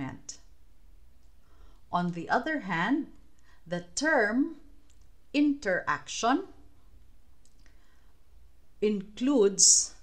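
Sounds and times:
woman narrating: 0.0s - 0.4s, 1.9s - 4.7s, 5.4s - 6.6s, 8.8s - 10.0s
low steady hum: 0.0s - 10.0s.

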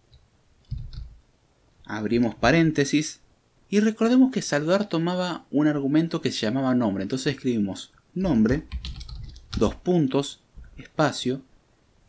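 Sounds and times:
soft keyboard keystrokes: 0.6s - 1.2s, 8.3s - 9.8s.

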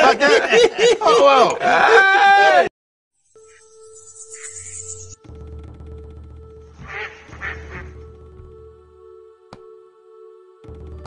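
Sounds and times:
low music drone: 3.4s - 11.0s.

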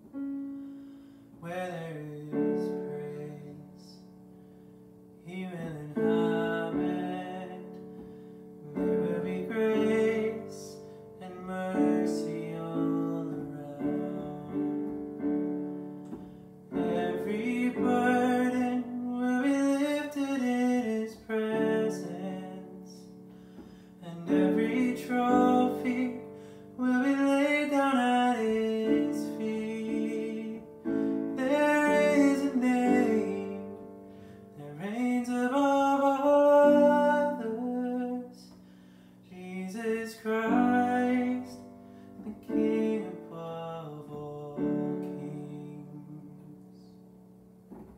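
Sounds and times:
digital piano chords: 0.0s - 47.9s
man singing: 1.4s - 4.1s, 5.2s - 38.6s, 39.3s - 47.0s.

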